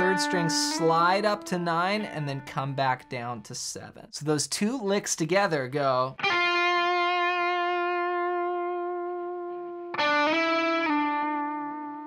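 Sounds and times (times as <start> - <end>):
electric guitar licks: 0.0 - 3.5, 6.1 - 12.0.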